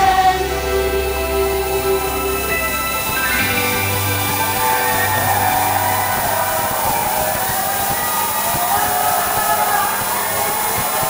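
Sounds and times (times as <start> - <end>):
faint music: 0.0 - 11.0
faint voices over sound system: 0.0 - 11.0
loud steady noise: 0.0 - 11.0.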